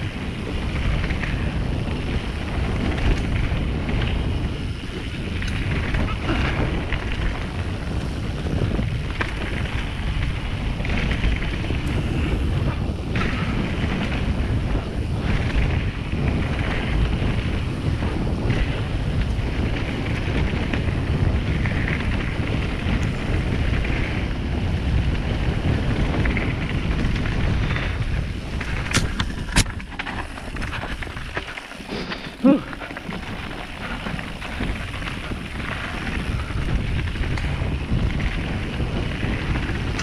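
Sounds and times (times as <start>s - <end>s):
tyres rolling over dirt trail: 0.0s - 40.0s
wind rushing over microphone: 0.0s - 40.0s.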